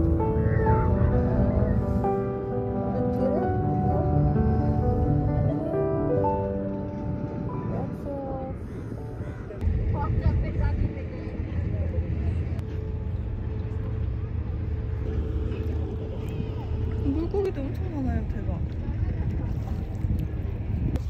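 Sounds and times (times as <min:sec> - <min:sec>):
background music: 0:00.0 - 0:09.6
wind rumbling on microphone: 0:00.0 - 0:21.0.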